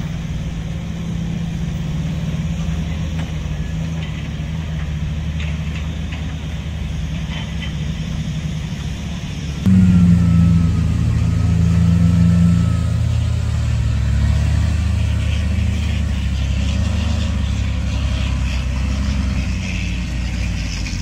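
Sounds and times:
diesel truck engine under load: 0.0s - 21.0s
faint high whistle: 9.7s - 14.3s.

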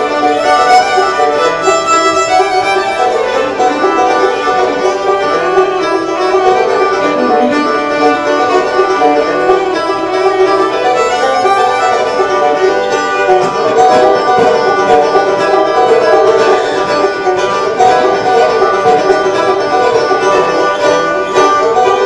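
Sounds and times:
banjo picking rolls: 0.0s - 22.0s
fiddle bowing melody: 0.0s - 22.0s.

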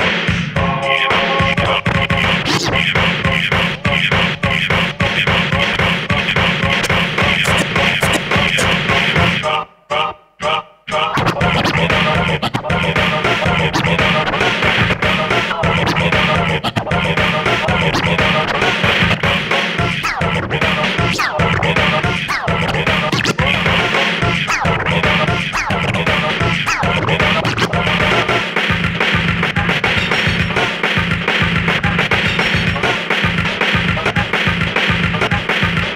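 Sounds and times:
turntable scratching music: 0.0s - 9.7s, 10.5s - 35.9s
hip hop beat: 0.0s - 35.9s.

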